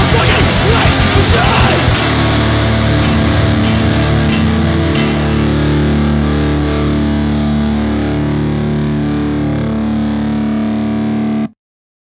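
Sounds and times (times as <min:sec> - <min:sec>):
distorted electric guitar chord: 0:00.0 - 0:11.6.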